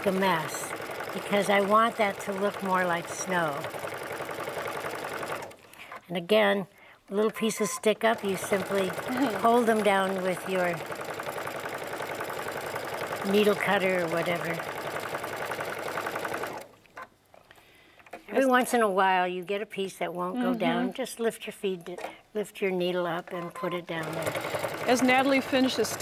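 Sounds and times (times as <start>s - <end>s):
sewing machine stitching rapidly: 0.0s - 5.6s, 8.0s - 16.8s, 23.4s - 26.0s.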